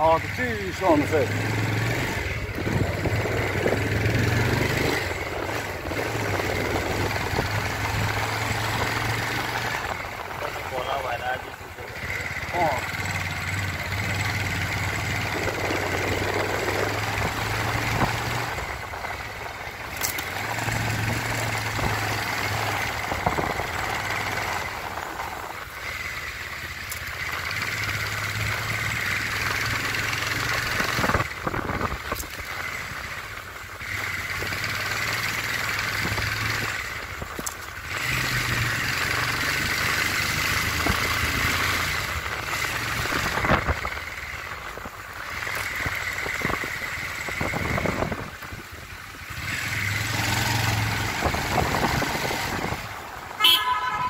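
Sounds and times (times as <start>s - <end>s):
vehicle engine humming: 0.0s - 54.0s.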